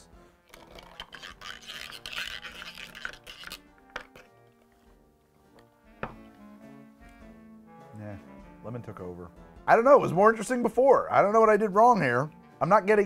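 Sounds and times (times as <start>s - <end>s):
background music: 0.0s - 13.0s
spoon stirring over ice: 0.5s - 4.9s.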